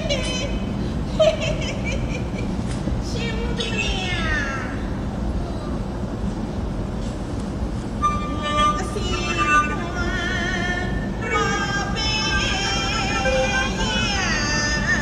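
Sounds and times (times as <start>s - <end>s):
opera performer singing: 0.0s - 0.7s, 8.0s - 15.0s.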